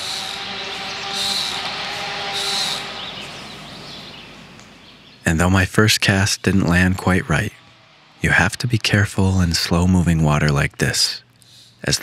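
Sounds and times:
bird calling: 0.0s - 9.6s.

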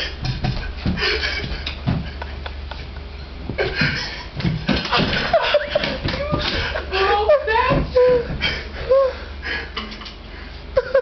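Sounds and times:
people laughing and exclaiming: 4.8s - 8.3s.

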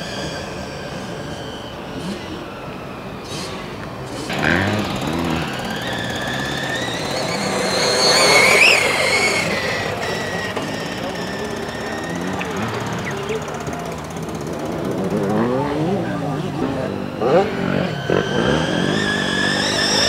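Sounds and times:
electric motor whining: 4.0s - 20.0s.

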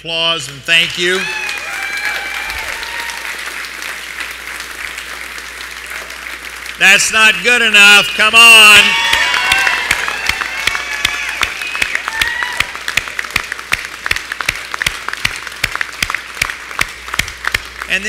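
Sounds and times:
crowd applause: 0.7s - 18.0s
sharp close claps: 9.1s - 18.0s.

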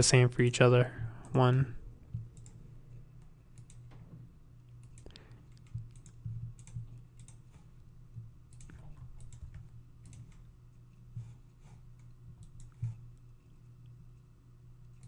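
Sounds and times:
faint low hum: 0.0s - 15.0s
keyboard keystrokes: 4.8s - 7.5s.

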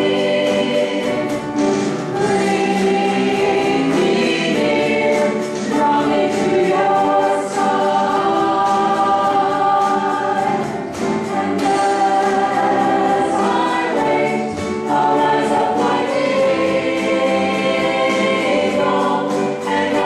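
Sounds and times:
group singing: 0.0s - 20.0s.

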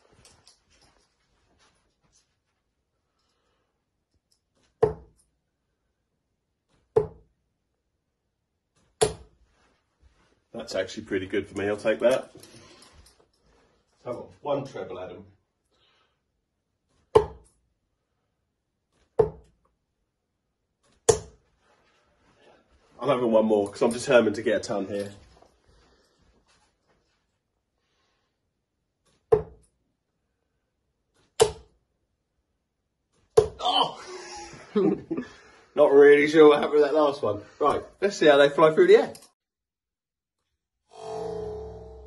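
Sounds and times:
darts striking a dartboard: 4.7s - 5.2s, 6.9s - 7.3s, 8.8s - 9.4s, 17.0s - 17.5s, 19.1s - 19.6s, 20.9s - 21.4s, 29.2s - 29.7s, 31.3s - 31.8s, 33.3s - 33.6s.

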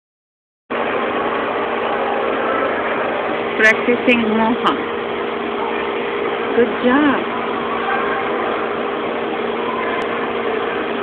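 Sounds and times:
ice rink hum and hiss: 0.7s - 11.0s.

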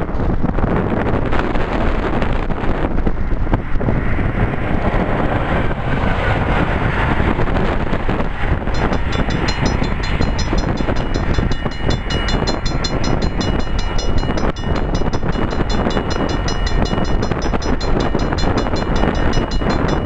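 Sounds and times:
distant approaching train: 0.0s - 20.0s
wind buffeting microphone: 0.0s - 20.0s
rapid high ringing: 8.6s - 20.0s.

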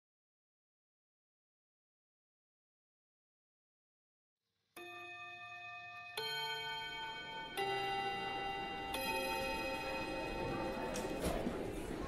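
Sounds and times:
tubular bell chime: 4.8s - 12.0s.

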